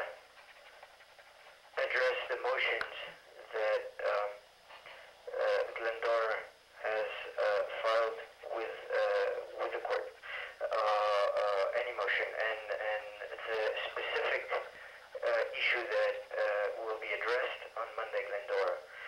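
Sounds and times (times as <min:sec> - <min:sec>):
speech over telephone line: 0:01.8 - 0:04.4, 0:05.3 - 0:19.0.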